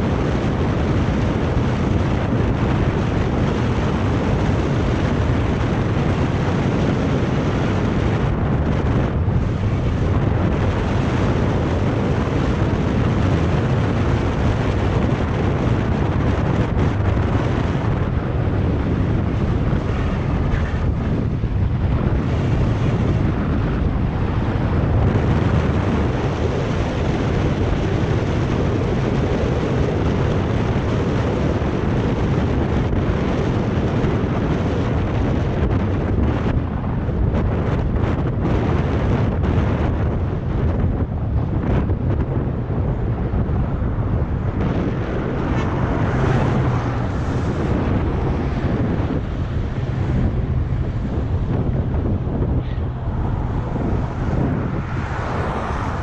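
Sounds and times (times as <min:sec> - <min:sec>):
low rumble: 0:00.0 - 0:28.8, 0:34.9 - 0:56.0
wind rushing over microphone: 0:00.0 - 0:56.0.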